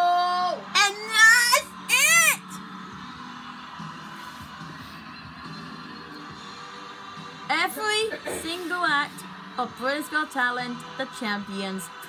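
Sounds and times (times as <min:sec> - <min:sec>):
faint television music: 0:00.0 - 0:12.0.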